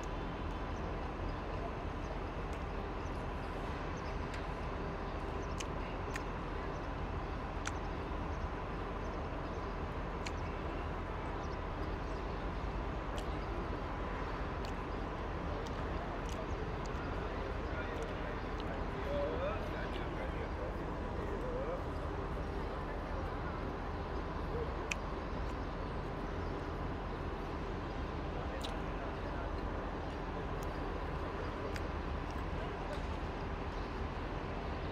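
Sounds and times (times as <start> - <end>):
distant chatter: 0.0 - 34.9
outdoor background hum: 0.0 - 34.9
light clicks: 10.2 - 10.5.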